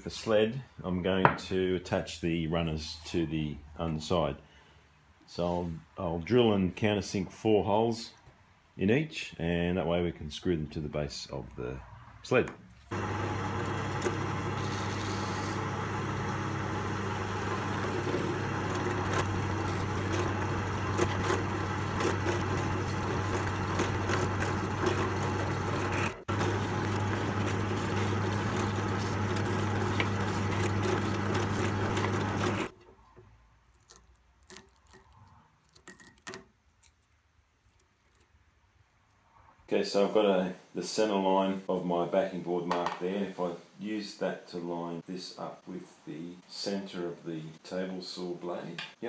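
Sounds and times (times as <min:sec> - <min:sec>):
drill press motor humming: 0:12.9 - 0:32.7.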